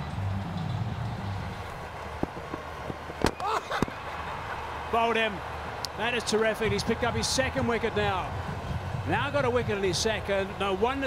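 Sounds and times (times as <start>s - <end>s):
cricket ball hitting stumps: 2.1s - 4.0s.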